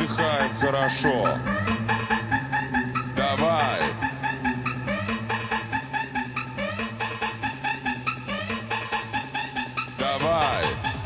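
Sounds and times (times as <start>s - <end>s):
dance music with synth notes: 0.0s - 11.0s.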